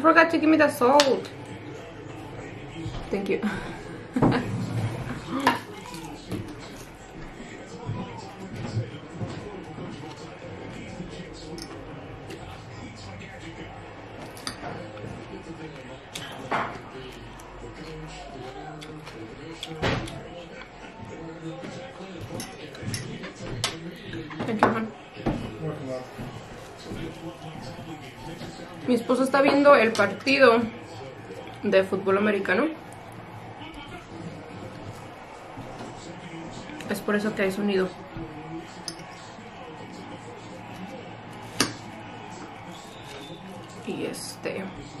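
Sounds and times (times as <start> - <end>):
television commentators' voices: 0.0 - 45.0
cutlery clatter: 14.2 - 15.0, 22.3 - 24.8.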